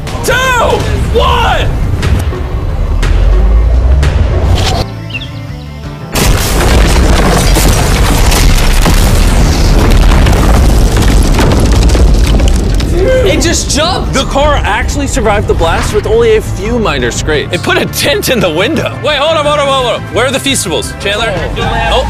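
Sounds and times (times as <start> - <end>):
music: 0.0 - 22.0
explosion blast rumble: 6.2 - 13.8.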